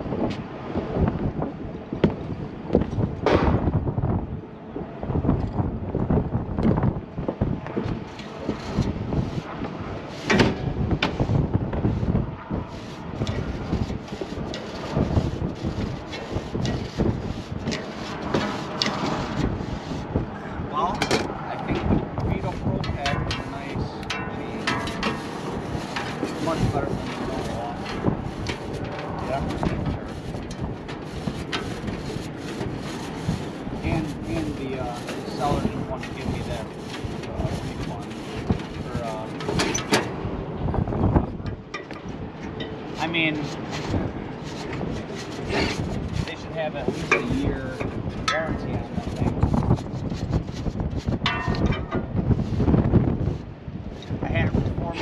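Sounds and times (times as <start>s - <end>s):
gusty wind buffeting microphone: 0.0s - 55.0s
knocks on sheet-metal housing: 3.2s - 3.7s, 10.3s - 11.2s.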